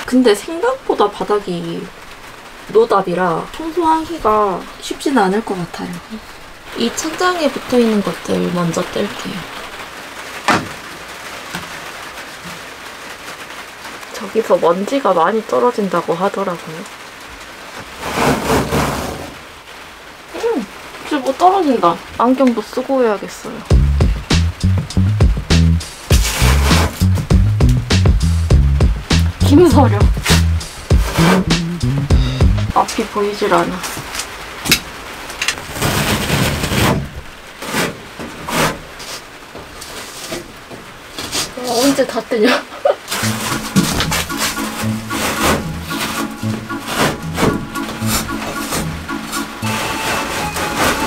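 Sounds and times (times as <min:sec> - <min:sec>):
rain on vehicle body: 0:00.0 - 0:51.0
panel rustling and scraping: 0:17.8 - 0:19.4, 0:43.1 - 0:51.0.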